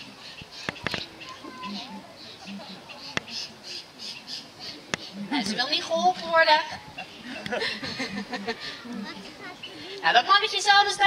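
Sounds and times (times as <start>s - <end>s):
harsh bird squawks: 0.3s - 5.3s.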